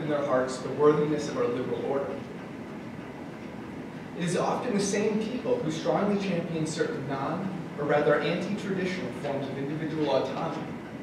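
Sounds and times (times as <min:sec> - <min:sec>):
room hiss and rumble: 0:00.0 - 0:11.0.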